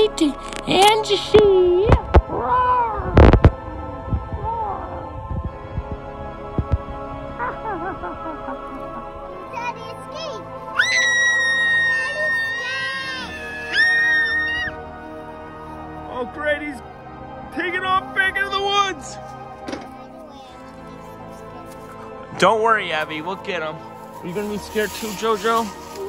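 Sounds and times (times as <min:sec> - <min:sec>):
background music: 0:00.0 - 0:26.0
girl screaming: 0:10.8 - 0:14.8.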